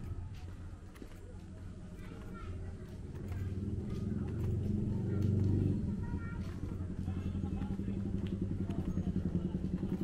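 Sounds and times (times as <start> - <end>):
faint voices: 0.0 - 10.0
vehicle engine running: 0.0 - 10.0.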